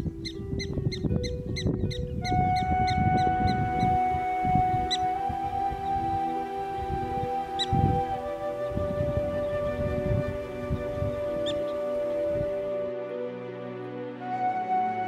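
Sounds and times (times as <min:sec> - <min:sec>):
background music with held notes: 0:00.0 - 0:15.0.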